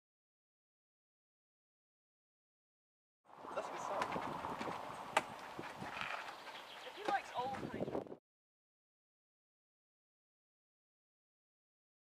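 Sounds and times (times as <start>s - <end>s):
footsteps: 3.5s - 8.1s.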